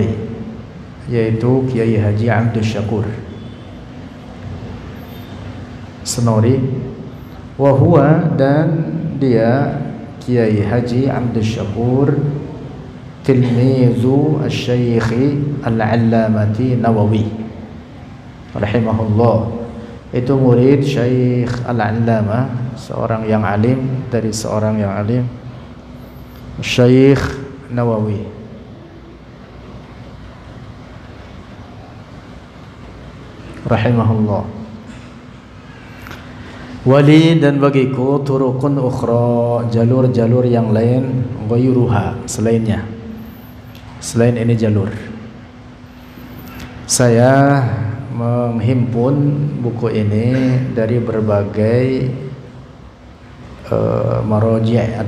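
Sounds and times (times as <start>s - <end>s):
man speaking: 0.0s - 3.4s, 6.0s - 17.6s, 18.5s - 25.5s, 26.6s - 28.6s, 33.4s - 34.8s, 36.8s - 43.2s, 43.9s - 45.3s, 46.9s - 52.6s, 53.6s - 55.0s
low room rumble and hum: 0.0s - 55.0s.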